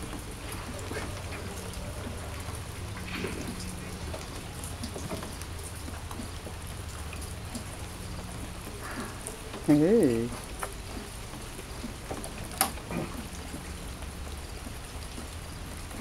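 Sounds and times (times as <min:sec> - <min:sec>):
drips and taps of drops: 0:00.0 - 0:16.0
steady rain falling: 0:00.0 - 0:16.0.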